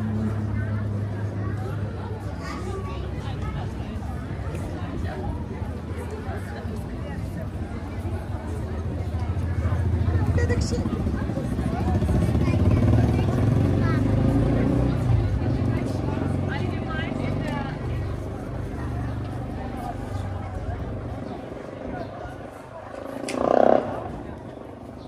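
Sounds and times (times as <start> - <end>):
people talking: 0.0 - 25.0.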